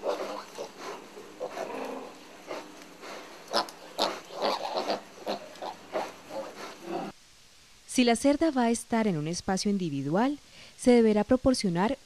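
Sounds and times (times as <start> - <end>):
pigs grunting: 0.0 - 7.1.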